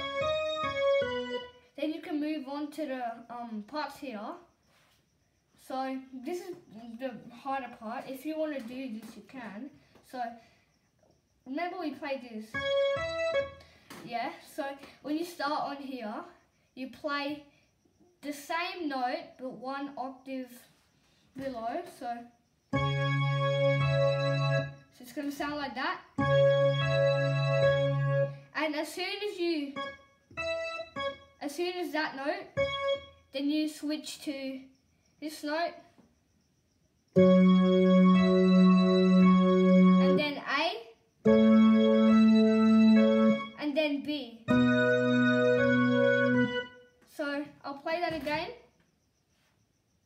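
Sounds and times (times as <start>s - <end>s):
digital piano low notes: 0.0s - 1.5s, 12.6s - 13.6s, 22.8s - 24.8s, 26.2s - 28.3s, 29.8s - 31.2s, 32.6s - 33.1s, 37.2s - 40.3s, 41.3s - 43.6s, 44.5s - 46.7s.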